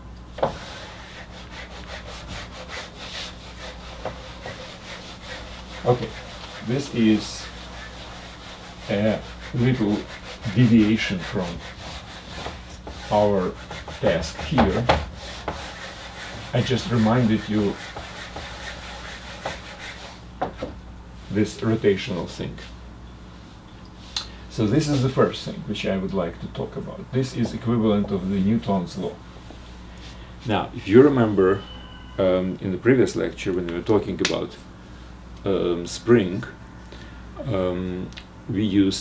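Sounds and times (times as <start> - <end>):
marker writing on whiteboard: 3.9 - 6.8, 7.6 - 20.1.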